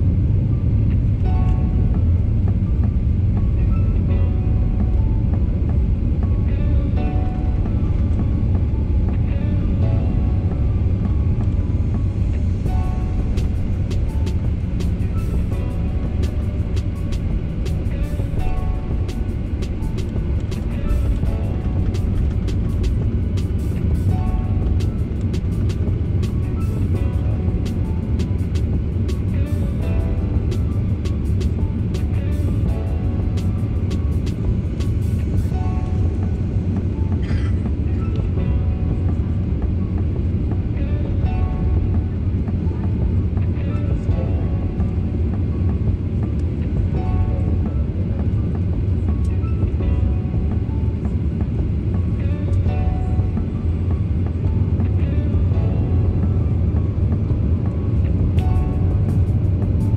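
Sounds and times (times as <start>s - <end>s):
airliner cabin rumble: 0.0s - 59.9s
background music with a beat: 0.0s - 59.9s.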